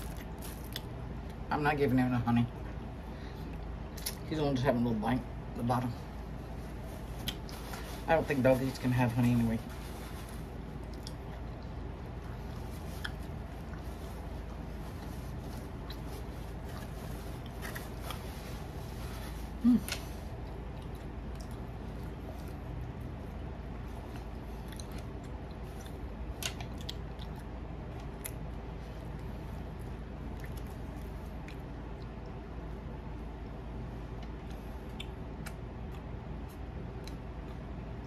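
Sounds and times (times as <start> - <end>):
person chewing a biscuit: 0.0 - 1.4, 9.8 - 32.7, 34.1 - 38.0
steady low background hum: 0.0 - 38.0.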